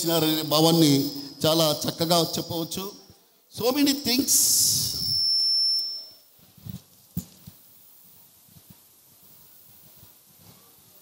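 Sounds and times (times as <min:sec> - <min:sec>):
loud hiss: 0:03.6 - 0:05.2
microphone feedback whistle: 0:03.9 - 0:06.7.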